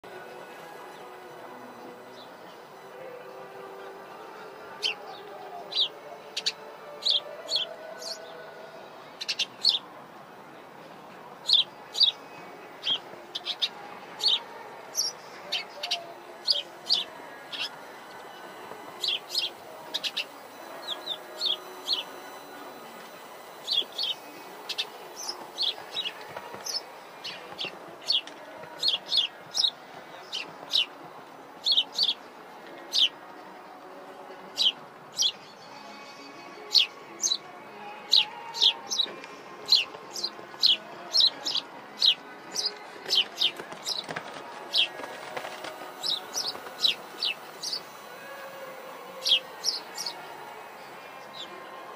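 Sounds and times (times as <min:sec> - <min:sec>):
faint outdoor background din: 0:00.0 - 0:51.9
small birds chirping: 0:00.7 - 0:08.4, 0:09.2 - 0:09.9, 0:11.2 - 0:31.0, 0:31.6 - 0:33.2, 0:34.6 - 0:35.6, 0:38.0 - 0:51.6.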